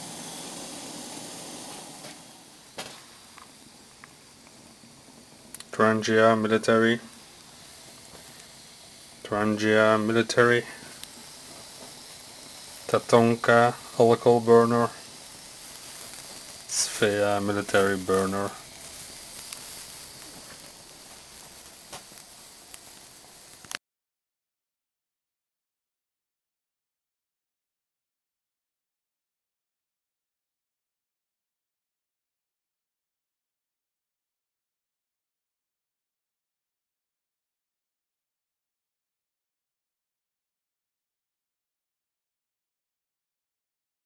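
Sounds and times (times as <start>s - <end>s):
burners hissing: 0.0s - 23.8s
sharp click: 5.5s - 5.7s.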